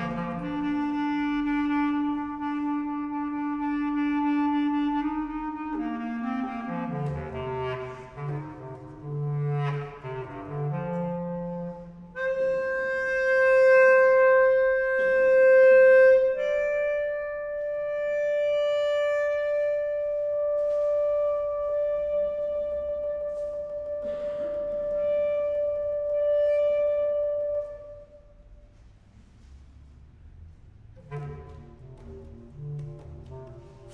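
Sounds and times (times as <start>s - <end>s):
clarinet holding long notes: 0.0s - 28.8s, 31.0s - 33.9s.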